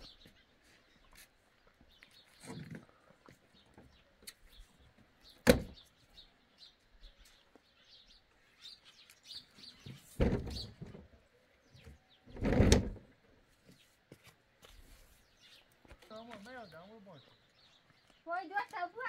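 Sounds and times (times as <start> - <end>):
small birds chirping: 0.0 - 19.0
dull thud: 10.2 - 11.0.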